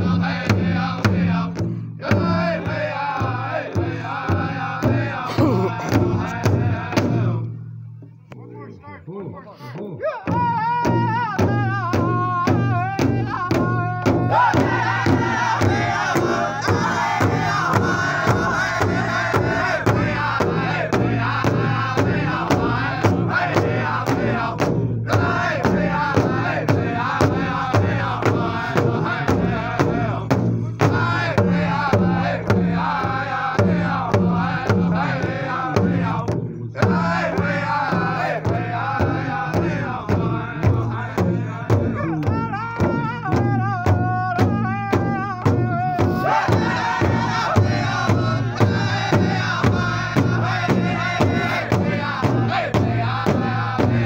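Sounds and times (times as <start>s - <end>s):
group of singers chanting: 0.0s - 7.5s, 10.2s - 54.0s
drum struck in a steady beat: 0.0s - 8.2s, 10.1s - 54.0s.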